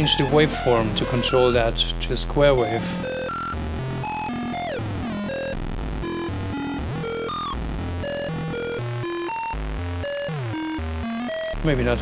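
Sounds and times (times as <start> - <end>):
square wave synth sequence: 0.0 - 1.6, 2.6 - 11.6.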